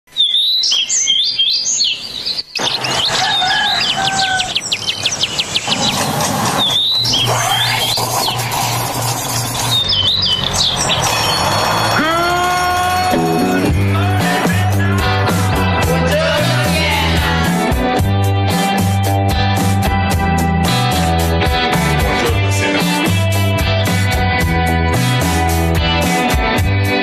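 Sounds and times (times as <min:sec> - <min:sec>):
birds chirping: 0:00.1 - 0:15.4
theme music with low bass: 0:09.5 - 0:27.0.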